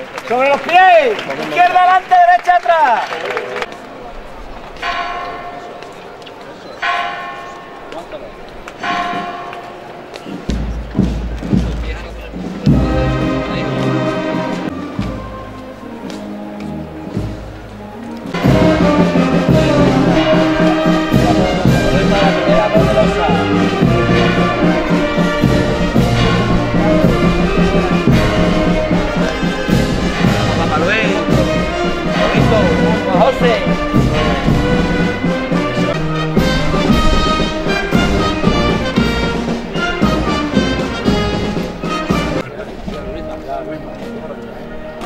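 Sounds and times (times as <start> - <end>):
brass band playing a march: 8.9 - 45.0.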